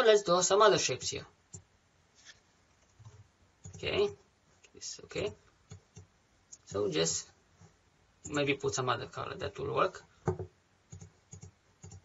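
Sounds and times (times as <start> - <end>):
computer mouse clicks: 10.3 - 12.0.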